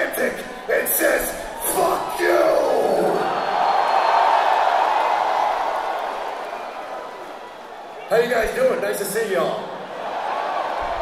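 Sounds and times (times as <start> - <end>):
crowd cheering and yelling: 0.0 - 11.0.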